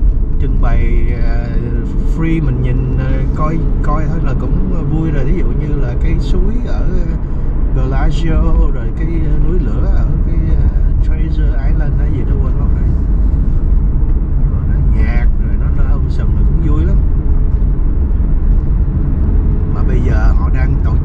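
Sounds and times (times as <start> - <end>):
car cabin road rumble: 0.0 - 21.0
man's voice: 0.4 - 13.0, 14.5 - 17.1, 19.7 - 21.0.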